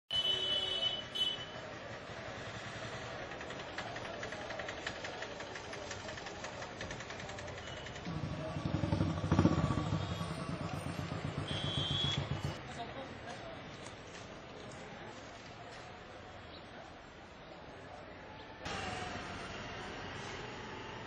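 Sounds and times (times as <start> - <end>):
street ambience: 0.1 - 21.0
vehicle engine running: 1.9 - 12.6.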